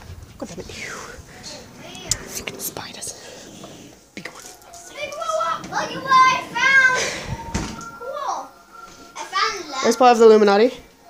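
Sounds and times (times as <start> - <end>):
person whispering: 0.4 - 4.8.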